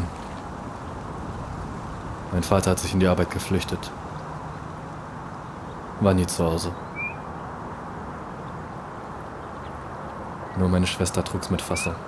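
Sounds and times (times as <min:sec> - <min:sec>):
outdoor ambience: 0:00.0 - 0:12.0.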